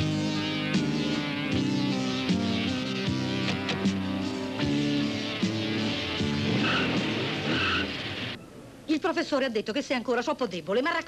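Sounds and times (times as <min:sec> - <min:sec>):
car pulling away: 0:00.0 - 0:08.8
film soundtrack music: 0:00.1 - 0:08.7
tyre squeals: 0:06.5 - 0:08.6.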